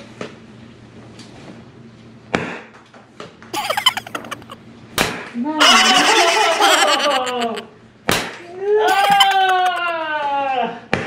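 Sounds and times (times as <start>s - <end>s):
high-pitched vocal sounds: 3.7s - 4.6s.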